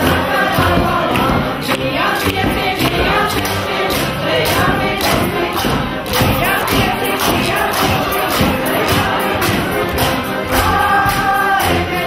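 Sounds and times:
crowd noise: 0:00.0 - 0:12.0
group singing in chorus: 0:00.0 - 0:12.0
hand percussion knocks and rattles: 0:00.1 - 0:12.0.

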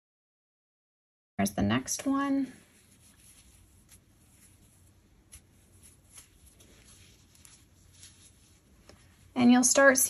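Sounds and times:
crochet hook rustling through yarn: 0:02.2 - 0:09.9.

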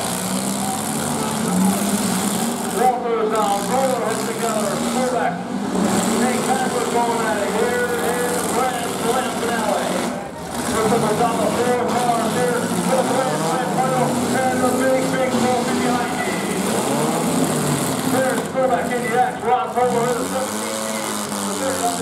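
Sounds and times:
car engines revving: 0:00.0 - 0:22.0.

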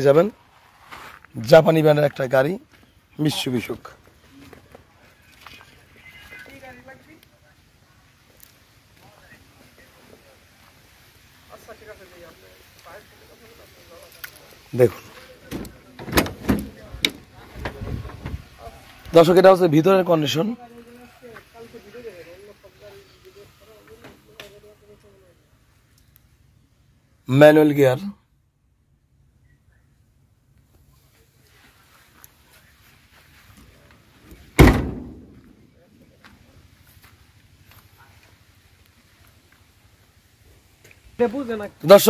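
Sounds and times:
truck door slamming: 0:15.5 - 0:18.4, 0:34.5 - 0:35.5.

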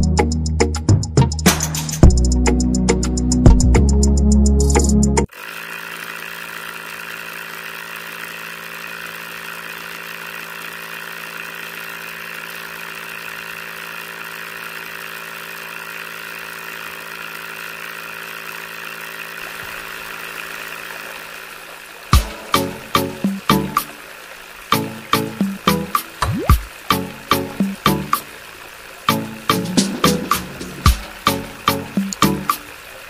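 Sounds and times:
small electric motor humming: 0:05.3 - 0:33.0.

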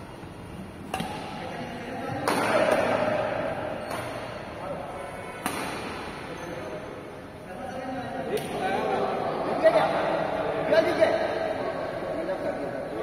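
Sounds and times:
racket hitting shuttlecock: 0:00.8 - 0:01.4, 0:02.1 - 0:04.4, 0:05.4 - 0:06.2.

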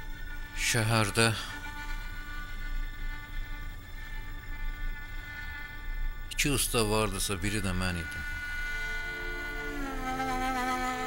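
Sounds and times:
bowed spike fiddle sustained note: 0:06.4 - 0:11.0.

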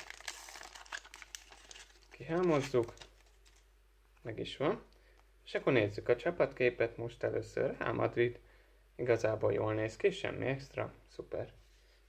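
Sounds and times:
wrapper crinkling: 0:00.0 - 0:03.7.

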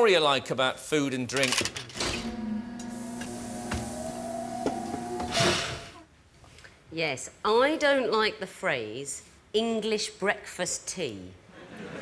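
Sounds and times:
mechanical hum with rising tone: 0:02.0 - 0:06.0.

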